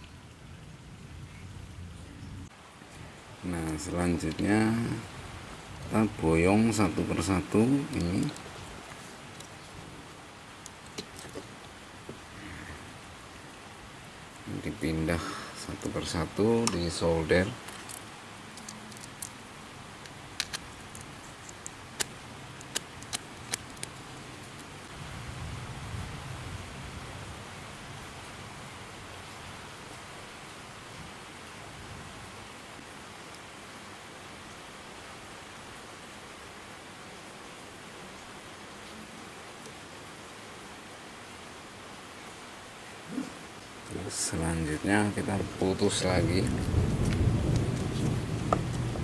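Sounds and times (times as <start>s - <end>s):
steady hiss: 0.0s - 49.0s
scissors snipping wire: 20.4s - 24.7s.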